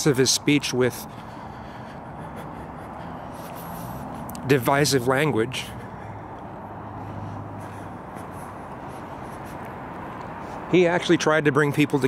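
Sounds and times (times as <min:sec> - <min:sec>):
car rumble and hiss: 0:00.0 - 0:12.0.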